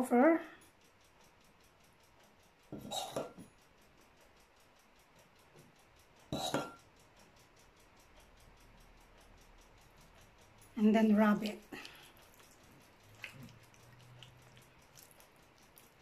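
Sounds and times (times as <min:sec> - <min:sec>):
metal spoon clinking against bowl: 0:02.7 - 0:03.5, 0:06.3 - 0:06.9.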